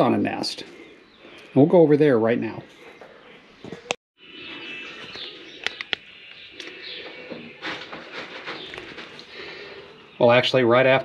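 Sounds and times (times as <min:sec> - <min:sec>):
rustling: 0:02.7 - 0:10.0
sharp clicks: 0:05.2 - 0:06.8.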